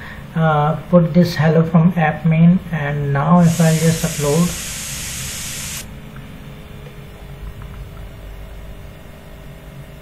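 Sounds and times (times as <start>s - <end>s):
bright hiss: 3.4s - 5.9s.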